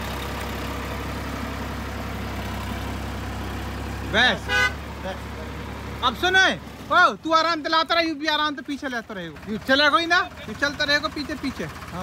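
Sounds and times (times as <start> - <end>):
diesel engine humming: 0.0 - 12.0.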